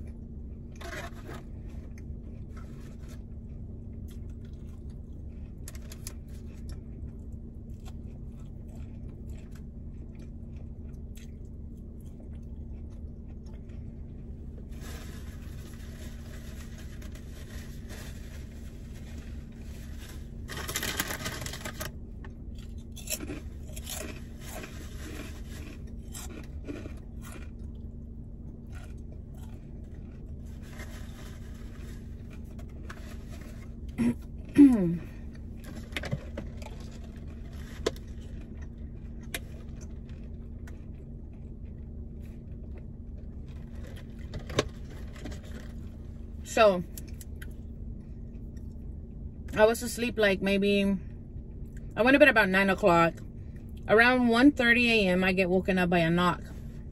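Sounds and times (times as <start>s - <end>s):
person chewing food: 0.0s - 17.2s, 18.4s - 34.5s
low hum inside car: 0.0s - 56.9s
woman humming mm: 34.0s - 35.2s.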